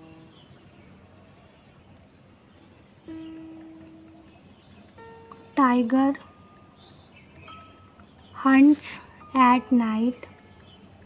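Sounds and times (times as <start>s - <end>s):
soft ringing notes: 2.9s - 11.0s.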